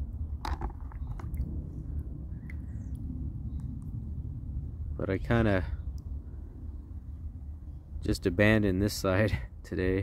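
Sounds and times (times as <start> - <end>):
low rumble: 0.0 - 9.6.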